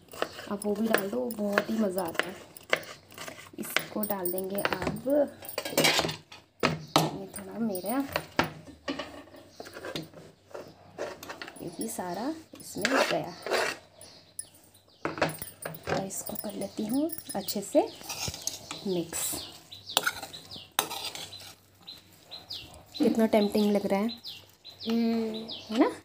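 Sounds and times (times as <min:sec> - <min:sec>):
spoon scraping metal pan: 0:00.0 - 0:06.4, 0:07.8 - 0:14.2, 0:15.8 - 0:23.8.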